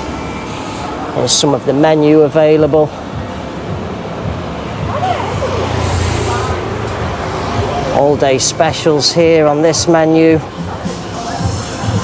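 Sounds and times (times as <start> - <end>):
faint voices: 0.0 - 12.0
road noise: 0.0 - 12.0
vehicle passing close by: 2.9 - 9.0.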